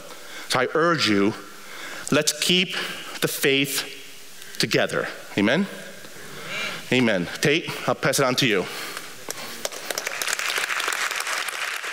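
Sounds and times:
audience applauding: 0:09.6 - 0:11.9.

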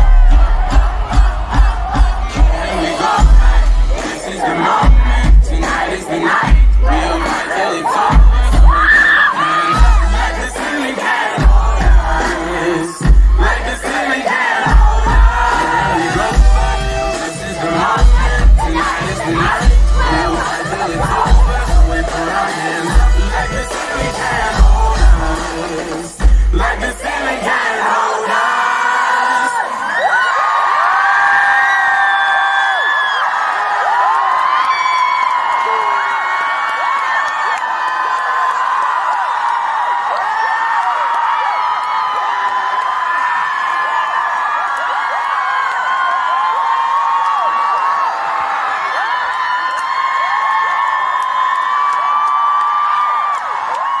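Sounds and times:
hip-hop music with heavy bass: 0:00.0 - 0:29.5
concert crowd cheering: 0:00.0 - 0:54.0.

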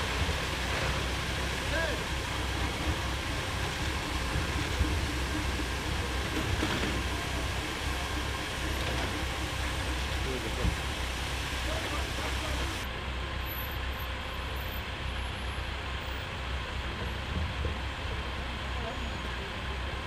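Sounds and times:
background voices: 0:00.0 - 0:12.9
vehicle engines rumbling: 0:00.0 - 0:20.0.

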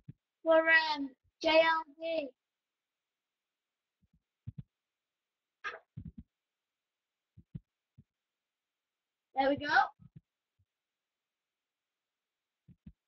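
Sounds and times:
faint low thuds: 0:04.4 - 0:04.7.

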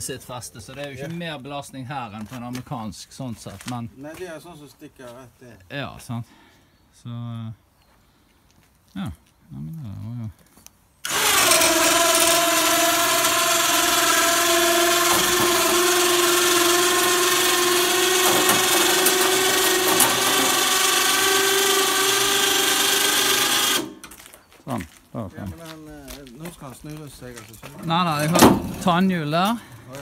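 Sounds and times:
electric winch motor whining: 0:11.0 - 0:24.1.

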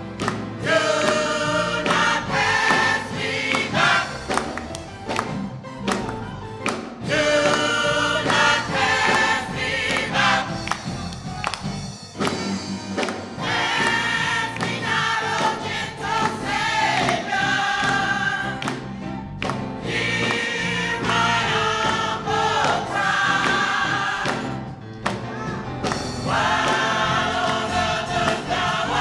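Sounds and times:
musical accompaniment: 0:00.0 - 0:29.0
choir singing gospel: 0:00.1 - 0:05.3, 0:06.8 - 0:11.2, 0:13.0 - 0:29.0.

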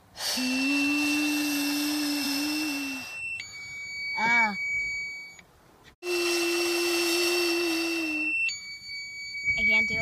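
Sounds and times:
breath rushing through mouthpiece: 0:00.0 - 0:03.2, 0:06.0 - 0:08.3
child humming: 0:00.2 - 0:03.2, 0:06.0 - 0:08.4
thin high tone: 0:00.2 - 0:10.0.

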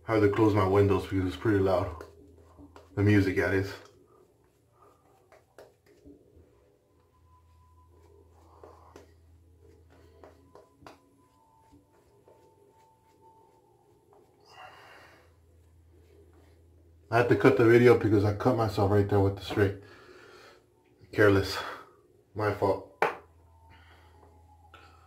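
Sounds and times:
faint music: 0:00.0 - 0:25.0
low steady hum: 0:00.0 - 0:25.0.

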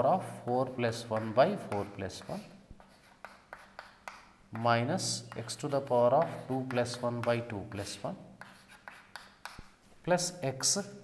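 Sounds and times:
chalk scratching on blackboard: 0:00.6 - 0:09.8.

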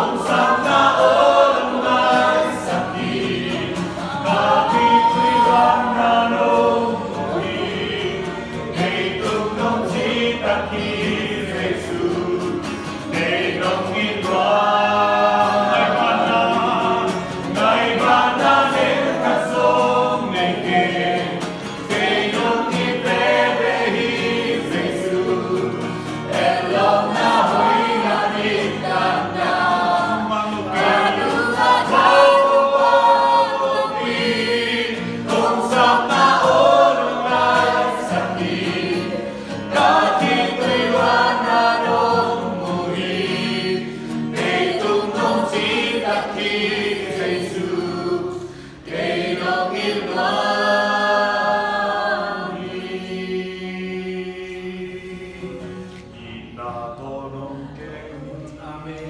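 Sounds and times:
group singing worship song: 0:00.0 - 0:59.0.

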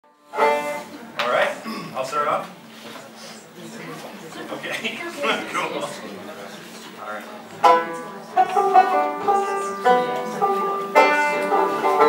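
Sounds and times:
banjo chord: 0:00.1 - 0:01.4, 0:07.6 - 0:12.0.

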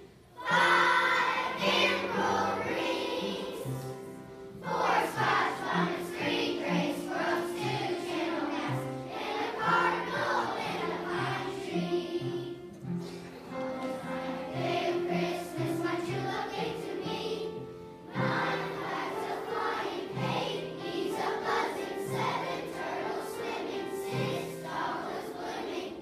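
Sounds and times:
children's choir singing: 0:00.0 - 0:26.0
upright piano accompaniment: 0:00.0 - 0:26.0.

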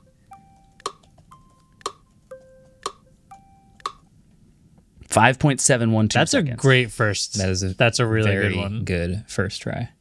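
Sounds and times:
clock ticking: 0:00.0 - 0:04.1.

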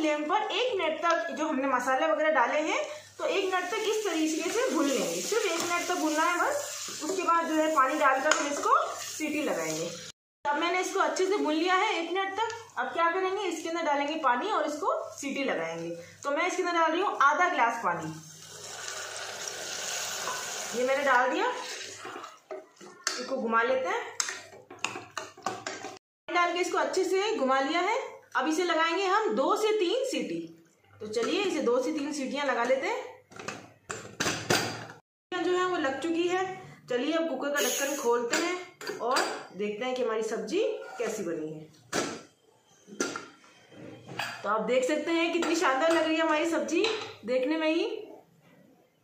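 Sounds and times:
water pouring into a pot: 0:18.2 - 0:22.5.

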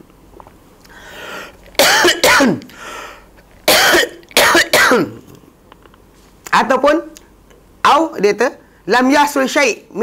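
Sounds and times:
drawn breath: 0:00.9 - 0:01.6, 0:02.7 - 0:03.3
man coughing: 0:01.8 - 0:02.6, 0:03.7 - 0:05.3.

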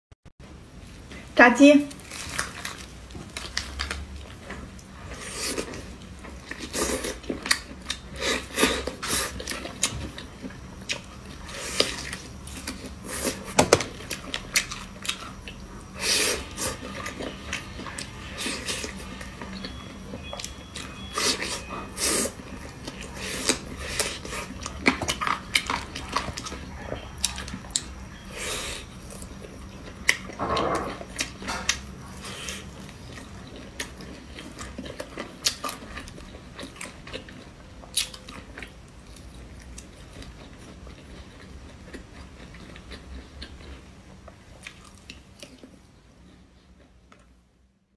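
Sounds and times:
chewing and biting meat: 0:03.4 - 0:28.0.

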